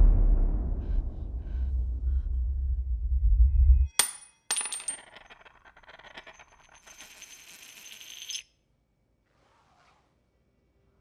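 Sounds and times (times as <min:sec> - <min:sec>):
bullet rolling metallic tinkle: 0:03.9 - 0:08.5
metal bullet bouncing on tile: 0:03.9 - 0:08.5.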